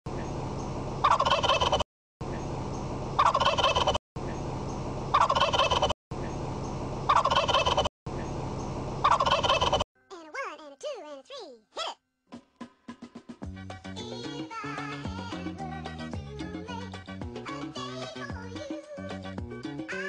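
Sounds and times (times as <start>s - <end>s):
turkey-like gobble: 1.0s - 1.8s, 3.2s - 4.0s, 5.1s - 6.0s, 7.1s - 7.9s, 9.0s - 9.8s.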